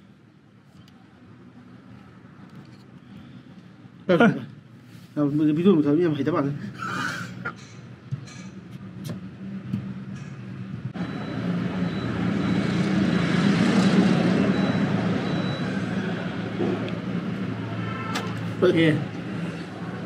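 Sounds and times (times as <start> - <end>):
motor vehicle passing: 11.0 - 17.8.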